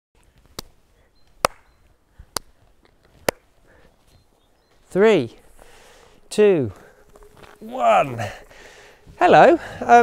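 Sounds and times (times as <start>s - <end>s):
sharp hand claps: 1.4s - 1.7s.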